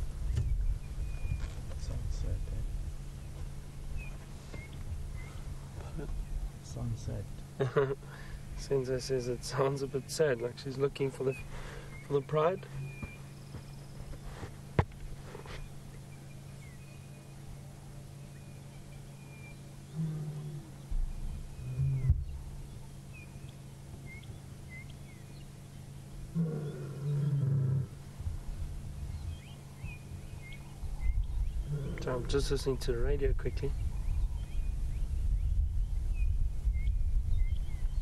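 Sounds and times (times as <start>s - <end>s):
lioness low moaning calls: 19.8s - 23.1s, 26.2s - 32.4s.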